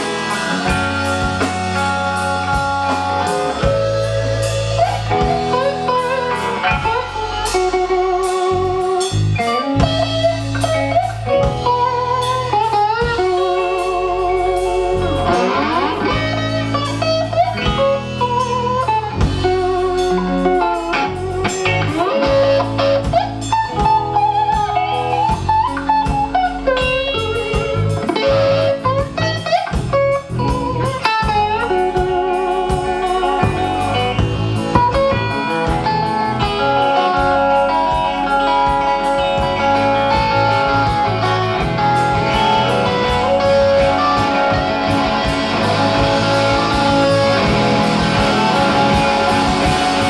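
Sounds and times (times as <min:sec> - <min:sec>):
electric guitar lead: 0:00.0 - 0:50.0
live rock band playing: 0:00.0 - 0:50.0.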